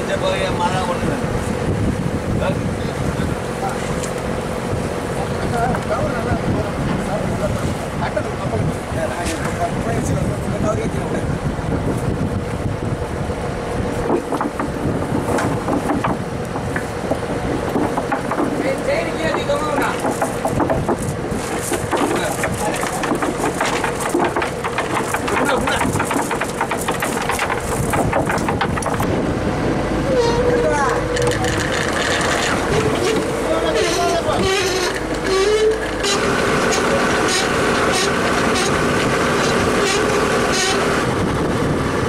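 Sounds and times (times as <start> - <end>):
boat engine running: 0.0 - 42.0.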